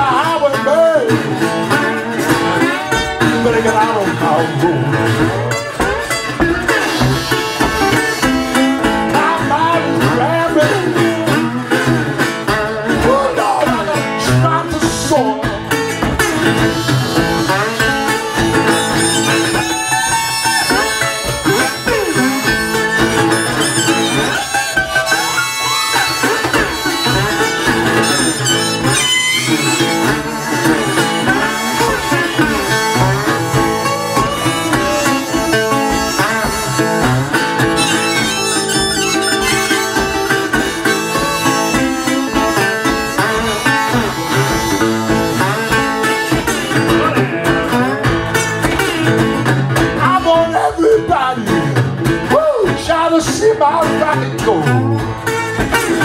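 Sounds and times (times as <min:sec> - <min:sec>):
fingerpicked acoustic guitar: 0:00.0 - 0:56.0
harmonica playing blues: 0:00.0 - 0:56.0
steady low beat: 0:20.5 - 0:49.7.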